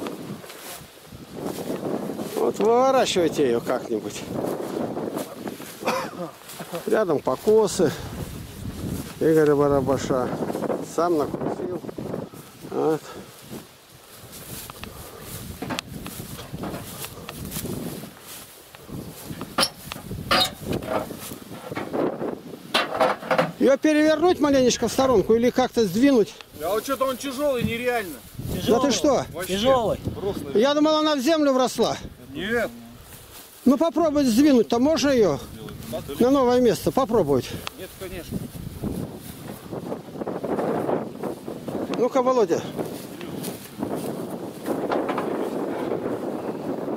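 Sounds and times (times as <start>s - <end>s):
wind buffeting microphone: 0.0s - 31.0s, 31.8s - 33.4s, 34.0s - 46.9s
footsteps: 0.0s - 46.9s
tall grass rustling: 0.0s - 46.9s
sharp knocks or scrapes: 19.4s - 22.0s, 22.7s - 23.6s.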